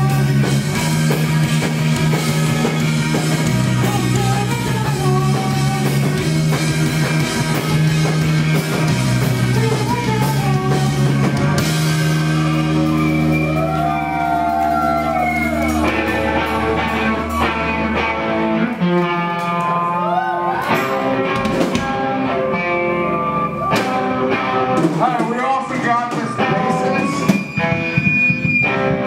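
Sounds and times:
loud live rock band: 0.0s - 29.0s.

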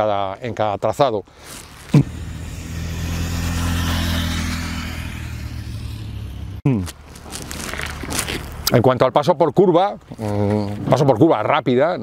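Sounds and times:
motorcycle passing by: 1.6s - 6.6s.

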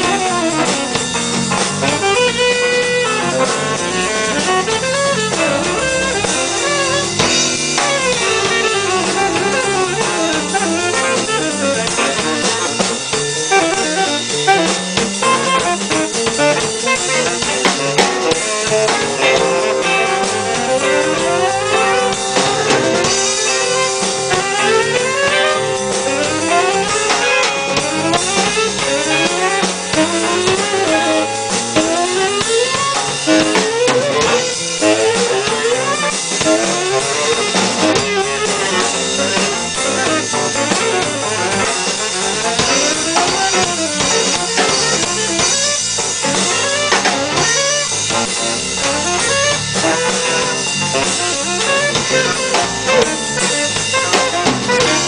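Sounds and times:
drum kit: 0.0s - 55.0s
tenor saxophone improvising: 0.0s - 55.0s.

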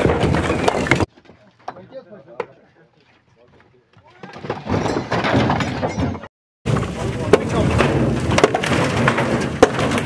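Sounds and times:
wood cracking and clattering: 0.0s - 1.1s, 4.2s - 10.0s
sledgehammer blows: 4.1s - 10.0s.

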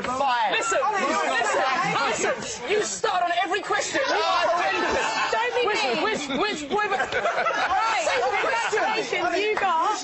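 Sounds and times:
people talking over one another: 0.0s - 10.0s
people laughing: 0.6s - 10.0s.

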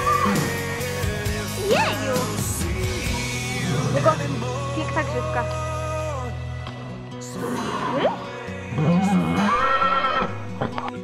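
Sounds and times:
rock music: 0.0s - 11.0s
horse whinnying: 7.4s - 10.8s.

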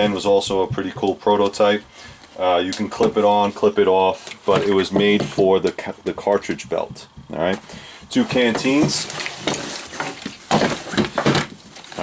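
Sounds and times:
nylon gear knocking and rustling: 8.2s - 12.0s.

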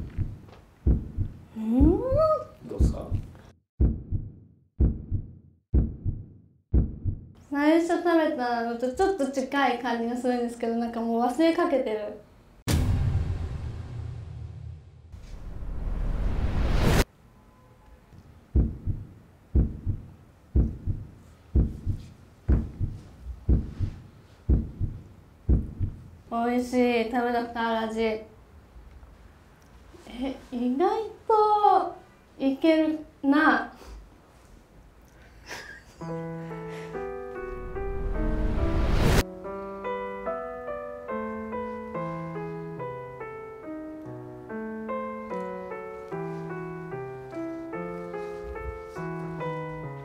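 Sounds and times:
heartbeat thumps: 0.0s - 7.4s, 18.6s - 26.1s.

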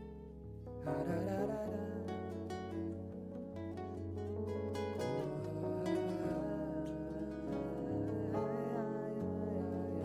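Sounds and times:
acoustic guitar picked melody: 0.0s - 10.0s
low bass notes: 0.0s - 10.0s.

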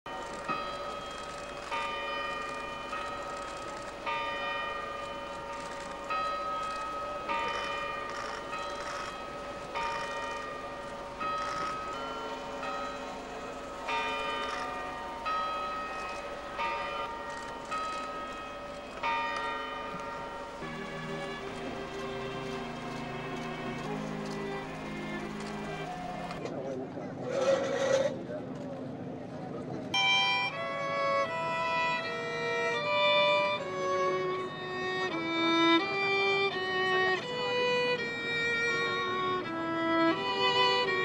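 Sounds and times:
church bells ringing: 0.1s - 26.4s, 30.0s - 41.0s.

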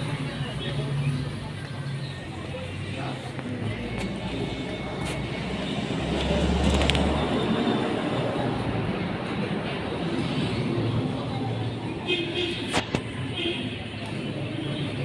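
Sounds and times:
vehicle low rumble: 0.0s - 11.9s
indistinct voices: 0.0s - 15.0s
passing traffic: 0.0s - 15.0s.

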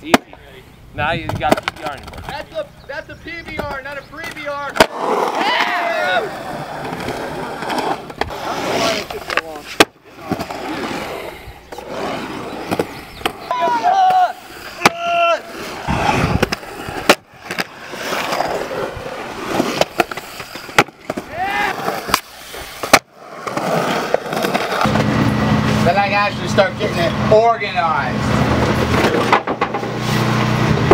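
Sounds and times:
skateboard wheels rolling on concrete: 0.0s - 30.9s
skateboard knocking on concrete: 1.2s - 2.6s, 3.4s - 10.6s, 15.9s - 25.1s, 28.6s - 30.0s.

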